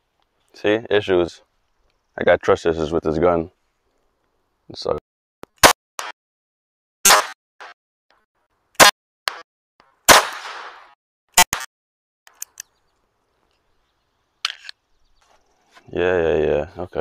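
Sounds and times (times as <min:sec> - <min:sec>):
pistol shots: 0:07.1 - 0:07.8, 0:08.8 - 0:09.4, 0:10.1 - 0:11.7.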